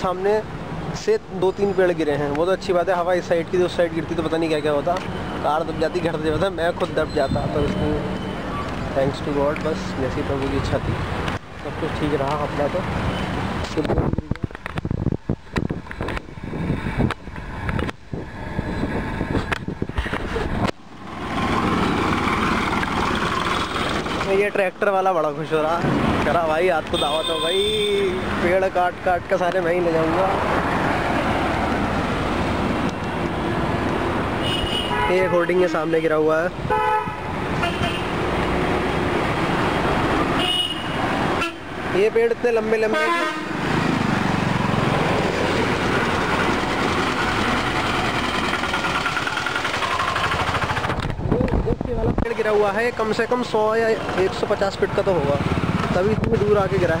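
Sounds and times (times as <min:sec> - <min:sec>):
road traffic rushing: 0:00.0 - 0:57.0
wind gusts on microphone: 0:13.4 - 0:20.7, 0:50.9 - 0:52.5
tractor engine passing: 0:21.0 - 0:24.6, 0:43.6 - 0:51.3
vehicle horn toot: 0:26.9 - 0:28.2, 0:34.4 - 0:35.5, 0:36.7 - 0:38.1, 0:40.4 - 0:41.6.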